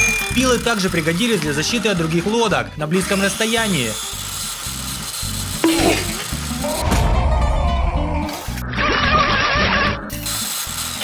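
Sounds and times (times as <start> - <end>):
background music with bass: 5.6 - 10.3.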